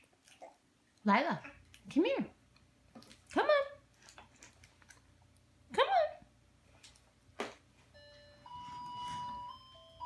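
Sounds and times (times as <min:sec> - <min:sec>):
toy tray beeping tune: 0:08.0 - 0:10.0.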